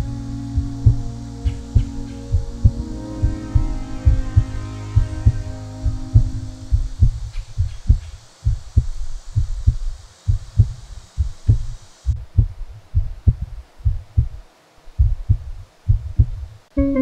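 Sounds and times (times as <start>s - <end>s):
heartbeat thumps: 0.0s - 14.4s, 15.0s - 17.0s.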